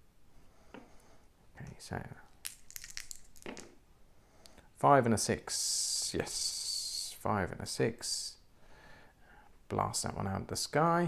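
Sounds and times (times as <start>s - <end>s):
dice clattering on play mat: 2.4s - 3.8s.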